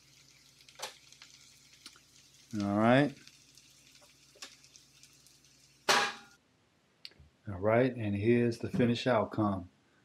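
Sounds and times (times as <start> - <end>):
food sizzling in a pan: 0.0 - 6.4
small crackles: 0.0 - 6.4.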